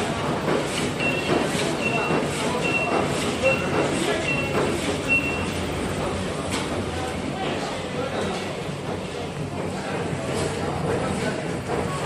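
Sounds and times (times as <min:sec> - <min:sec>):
machine mechanical noise: 0:00.0 - 0:12.0
short high beeps: 0:04.3 - 0:05.5.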